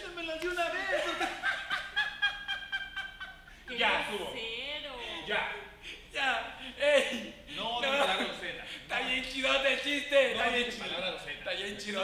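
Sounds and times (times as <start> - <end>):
high-pitched laugh: 0.9 - 3.5.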